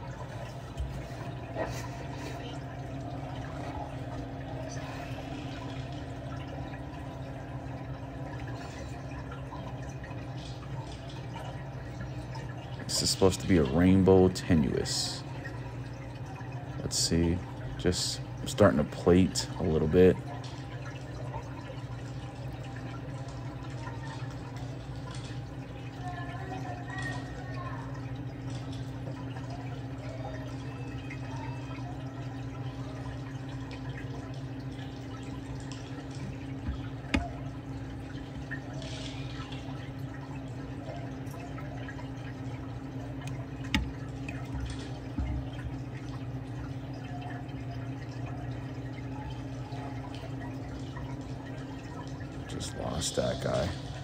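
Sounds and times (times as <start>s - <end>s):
aquarium pumps humming: 0.0s - 54.0s
water trickling and dripping: 0.0s - 54.0s.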